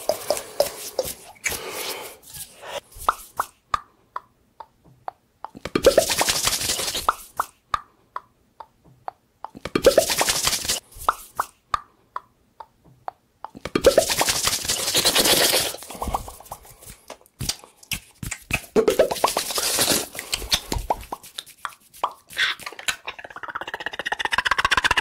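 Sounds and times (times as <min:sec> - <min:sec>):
hollow mouth pops: 0:17.4 - 0:25.0.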